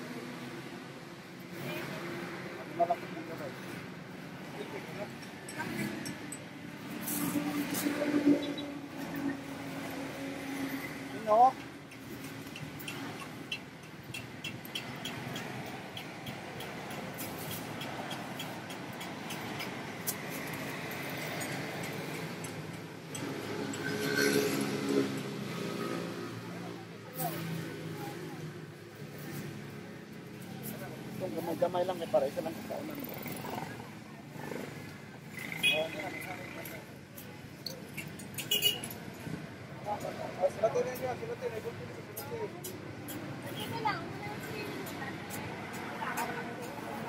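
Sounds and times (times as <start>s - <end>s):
steady engine hum: 0.0s - 38.8s.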